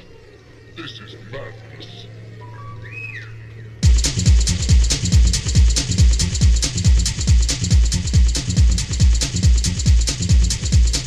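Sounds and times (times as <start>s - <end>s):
whistle-like electronic tone: 0.0s - 4.4s
steady low drone: 0.0s - 11.0s
techno beat with heavy kick drums: 3.8s - 11.0s.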